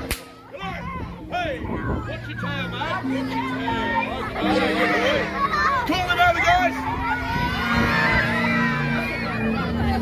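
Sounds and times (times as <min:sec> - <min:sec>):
sharp crack: 0:00.0 - 0:00.4
children's excited voices and squeals: 0:00.4 - 0:10.0.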